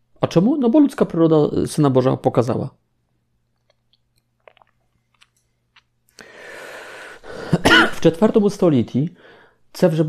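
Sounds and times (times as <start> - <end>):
man clearing his throat: 7.5 - 8.0.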